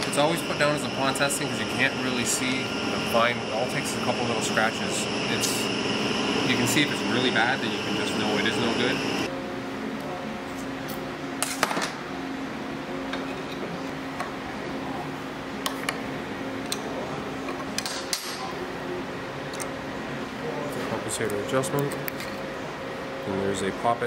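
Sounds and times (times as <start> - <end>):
steady low hum: 0.0 - 11.4.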